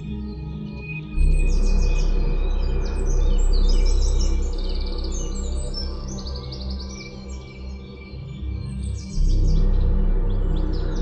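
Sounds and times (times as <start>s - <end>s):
ambient music: 0.0s - 11.0s.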